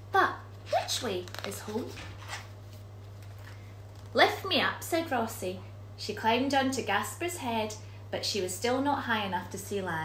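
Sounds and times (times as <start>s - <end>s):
steady low hum: 0.0s - 10.0s
paper page rustle: 0.7s - 4.2s.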